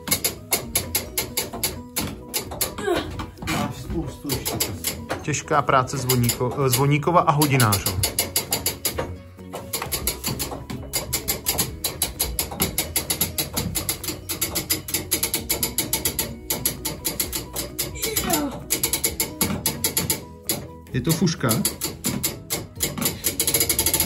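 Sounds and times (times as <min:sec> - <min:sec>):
ratchet pawl clicking: 0:07.5 - 0:09.0, 0:09.7 - 0:20.7, 0:21.5 - 0:24.0.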